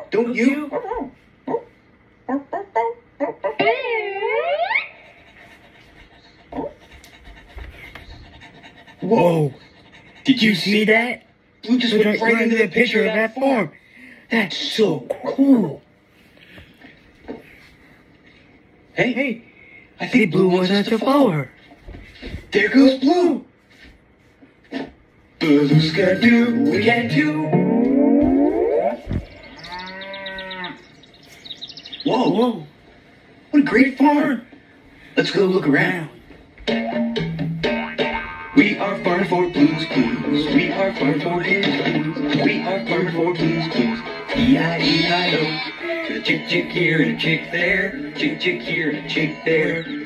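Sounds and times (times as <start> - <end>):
quiet breathing: 13.7 - 14.3, 19.4 - 20.0
soft footsteps on floor: 21.6 - 22.6, 23.6 - 25.2, 27.8 - 29.5
small birds chirping: 29.0 - 32.7, 49.2 - 50.0
cow mooing: 29.6 - 30.8.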